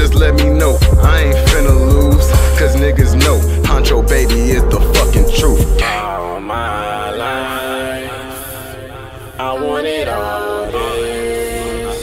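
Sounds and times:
layered sung vocal notes: 0.0s - 12.0s.

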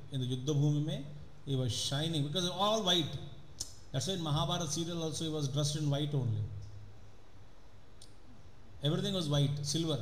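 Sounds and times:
man speaking: 0.0s - 6.6s, 8.8s - 10.0s
low hiss of room noise: 0.0s - 10.0s.

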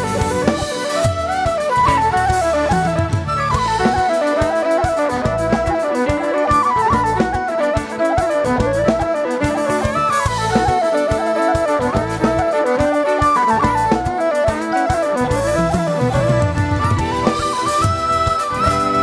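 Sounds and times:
bass: 0.0s - 4.1s, 5.2s - 5.7s, 6.8s - 7.4s, 8.5s - 9.0s, 9.8s - 10.8s, 11.8s - 12.4s, 13.6s - 14.1s, 15.2s - 19.0s
drums: 0.0s - 19.0s
electric guitar: 0.0s - 19.0s
whistle melody: 0.0s - 19.0s.

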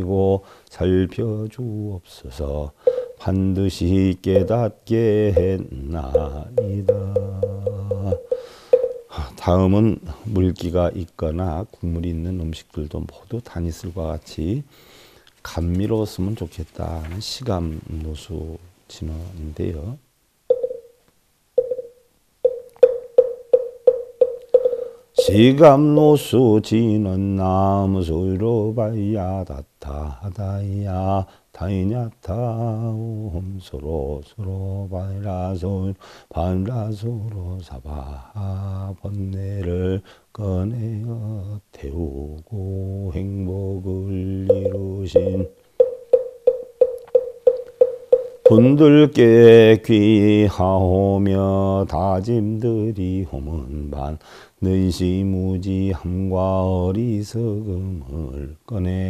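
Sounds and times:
hollow wooden knocks: 2.9s - 3.2s, 6.2s - 9.1s, 20.5s - 20.8s, 21.6s - 21.9s, 22.5s - 25.4s, 44.5s - 48.6s
wooden fish knocks: 6.2s - 9.0s.

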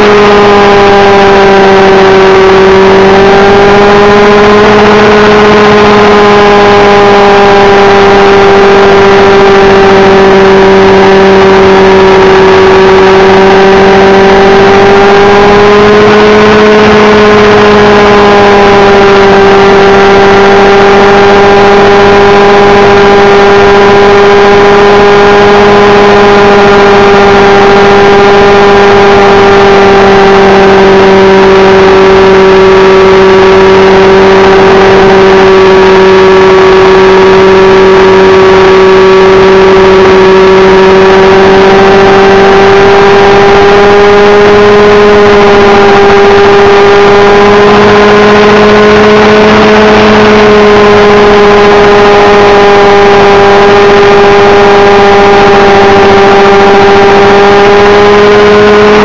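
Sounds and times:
model helicopter engine running: 0.0s - 59.0s
rotor blades whirring: 0.0s - 59.0s.

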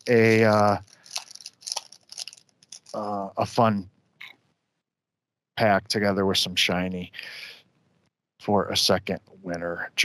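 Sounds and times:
wrapper tearing and crinkling: 0.0s - 3.1s.

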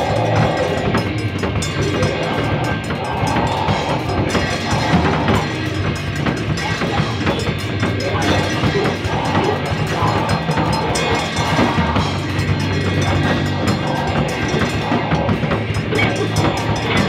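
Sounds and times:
drum kit hitting steadily: 0.0s - 17.0s
live band playing loud music: 0.0s - 17.0s.

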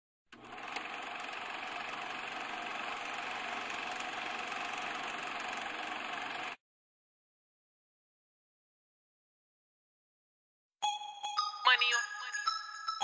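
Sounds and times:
film projector clattering: 0.3s - 6.6s.

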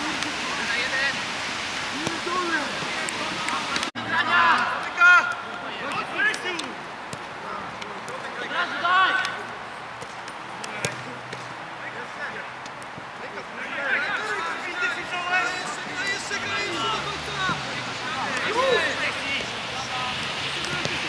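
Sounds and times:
players shouting: 1.9s - 21.0s.

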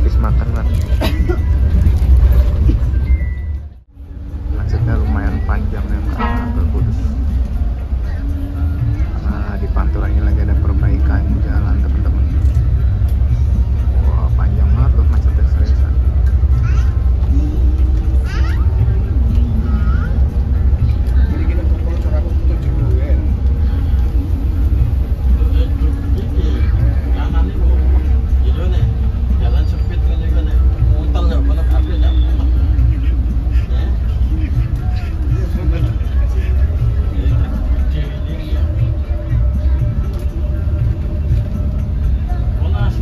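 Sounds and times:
coach engine rumble: 0.0s - 43.0s
tv voices and music: 3.7s - 43.0s.

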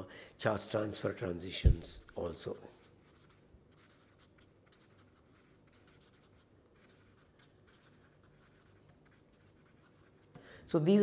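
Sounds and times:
felt-tip marker writing on paper: 2.0s - 10.3s.

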